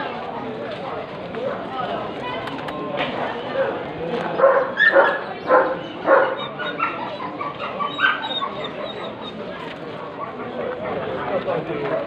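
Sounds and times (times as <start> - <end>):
crowd murmur: 0.0 - 12.0
dog barking: 4.4 - 7.0.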